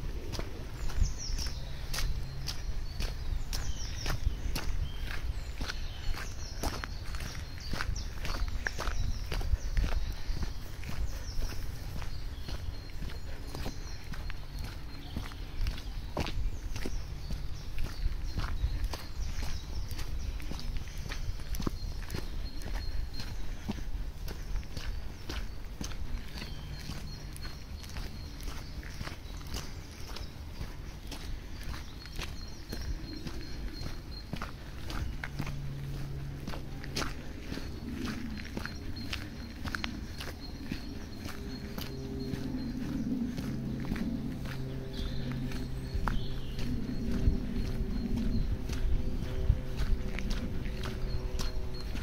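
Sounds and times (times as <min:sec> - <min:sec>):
footsteps on wet gravel and mud: 0:00.0 - 0:52.0.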